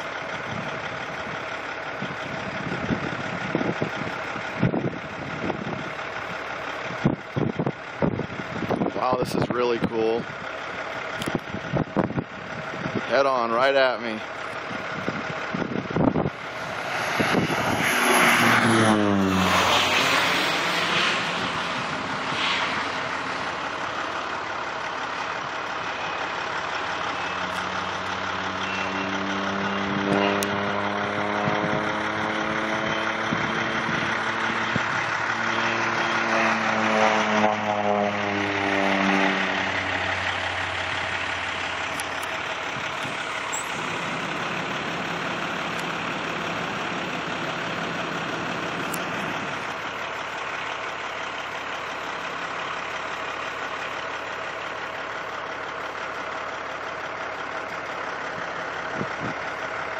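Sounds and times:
propeller plane engine droning: 0.0 - 59.9.

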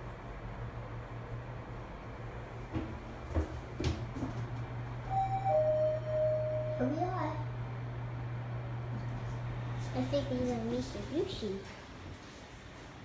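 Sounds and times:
elevator low hum: 0.0 - 13.0
two-note falling chime: 5.1 - 6.9.

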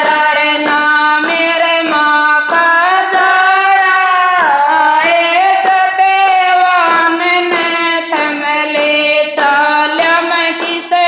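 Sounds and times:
hand claps: 0.0 - 11.0
women singing devotional song: 0.0 - 11.0.

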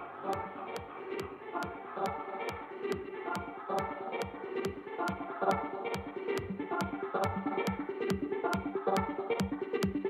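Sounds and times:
busy synth pattern: 0.0 - 10.0
crisp ticks over beat: 0.0 - 10.0
four-on-the-floor kick drum: 4.2 - 10.0.

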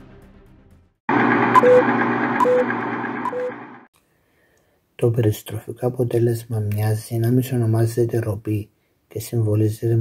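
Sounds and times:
short electronic beeps: 1.6 - 3.6.

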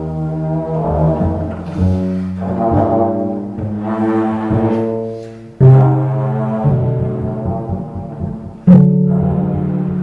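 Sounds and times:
double bass: 0.0 - 10.0.

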